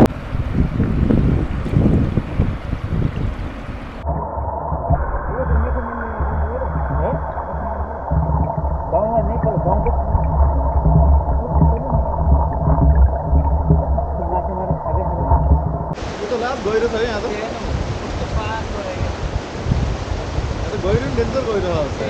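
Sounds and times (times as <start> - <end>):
underwater rumble with gurgles: 0.0 - 22.0
river water running over stones: 1.4 - 22.0.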